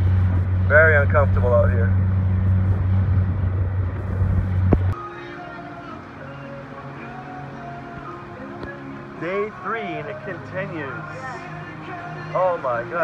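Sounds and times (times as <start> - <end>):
outboard motor running: 0.0 - 5.0
music with held notes: 4.9 - 13.0.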